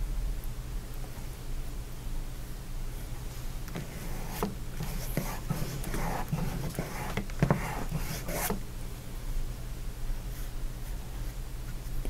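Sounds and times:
steady low hum: 0.0 - 12.0
paintbrush scraping canvas: 3.7 - 8.6.

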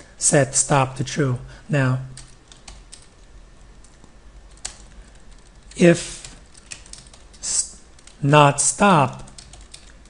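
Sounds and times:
computer keyboard keystrokes: 2.2 - 3.1, 3.8 - 8.2, 9.1 - 10.0.

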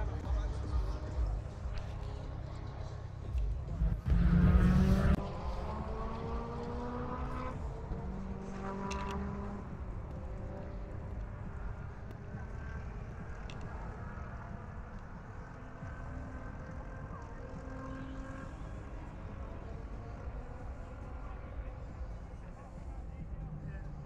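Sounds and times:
car engine revving: 0.0 - 24.0
low rumble: 3.3 - 7.0.

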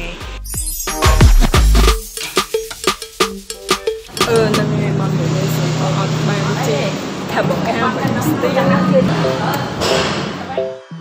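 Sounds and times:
background music: 0.0 - 6.8, 8.3 - 11.0
low mechanical hum: 4.2 - 9.7.

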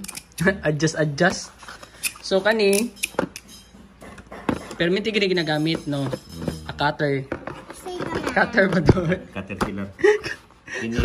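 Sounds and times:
metal pliers clicking against tools: 0.0 - 0.5, 2.0 - 3.7.

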